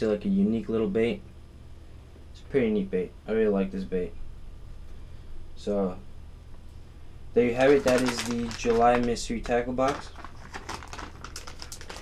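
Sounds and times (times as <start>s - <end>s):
low steady hum: 0.0s - 12.0s
plastic bag rustling: 7.4s - 12.0s.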